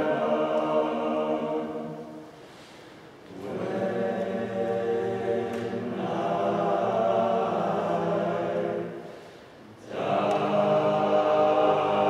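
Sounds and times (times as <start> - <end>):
male a cappella group singing: 0.0 - 2.3, 3.2 - 12.0.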